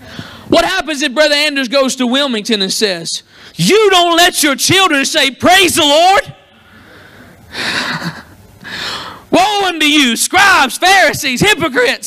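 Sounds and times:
man breathing heavily: 0.0 - 0.5, 6.6 - 9.3.

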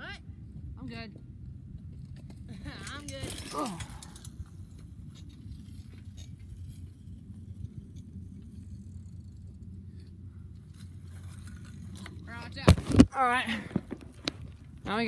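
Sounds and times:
wind rumble on microphone: 0.0 - 15.0.

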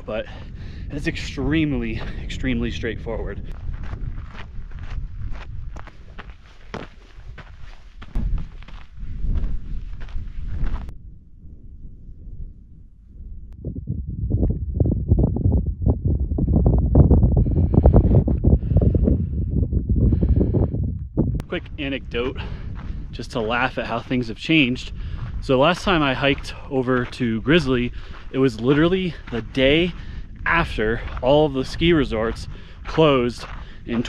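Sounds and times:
wind buffeting microphone: 0.0 - 34.0
footsteps on gravel: 3.4 - 10.9, 21.4 - 34.0.

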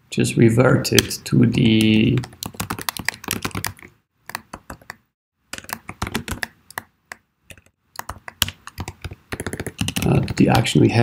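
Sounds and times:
typing on computer keyboard: 1.8 - 10.7.

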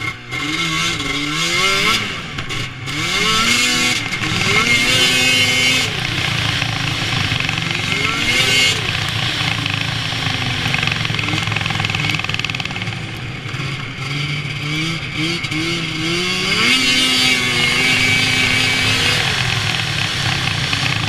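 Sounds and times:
snowmobile engine running: 0.0 - 21.0.

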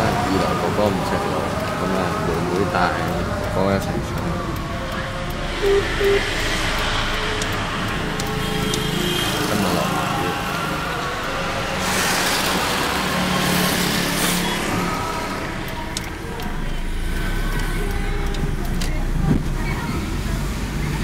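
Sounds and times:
car driving on wet road: 0.0 - 21.0
loud hiss: 11.6 - 15.2.

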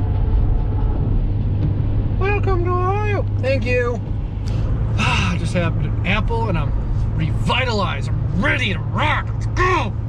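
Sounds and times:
truck road and engine rumble: 0.0 - 10.0.

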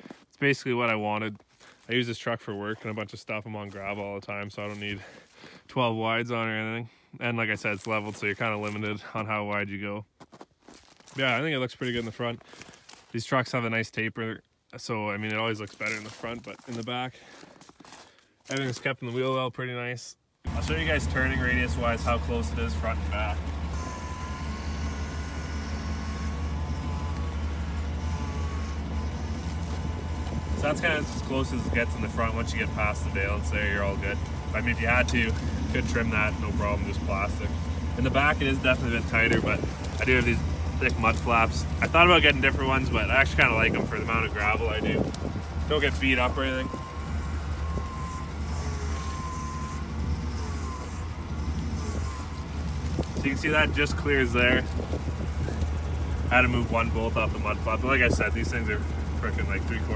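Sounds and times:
engine idling: 20.5 - 59.9
power steering pump whine: 20.5 - 59.9.

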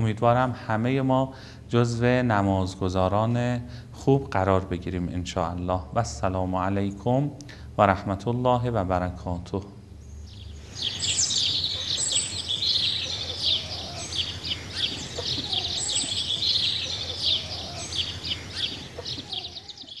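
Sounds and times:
small birds chirping: 9.5 - 20.0.

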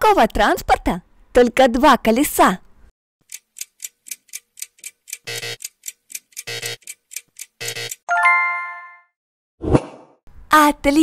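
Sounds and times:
ticking clock countdown: 3.2 - 8.0.

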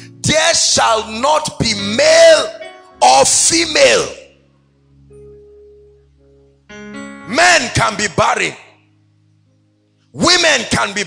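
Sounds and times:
soft sustained chord music: 0.0 - 11.0
preacher speaking: 0.1 - 4.2, 7.3 - 8.6, 10.2 - 11.0.

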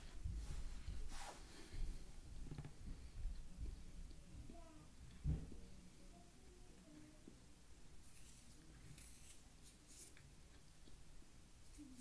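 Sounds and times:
low thump: 5.2 - 5.6.

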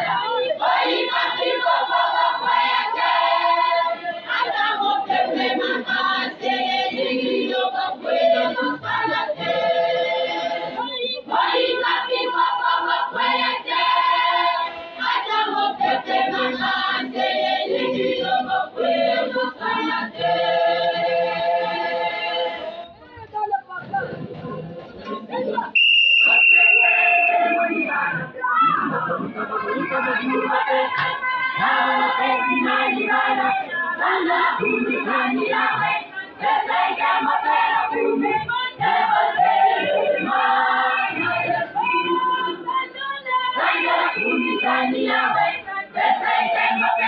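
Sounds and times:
women's choir singing: 0.0 - 23.0, 23.9 - 47.0
congregation talking: 0.0 - 47.0
shrill steady whistle: 25.8 - 28.1.

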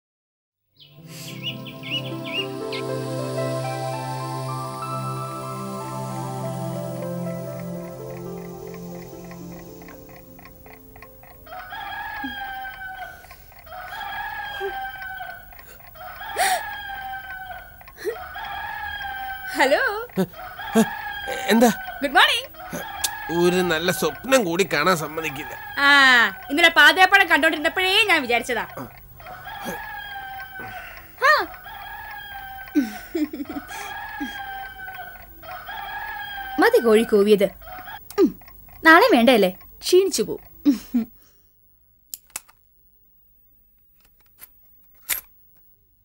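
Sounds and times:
rooster crowing: 1.1 - 38.1.

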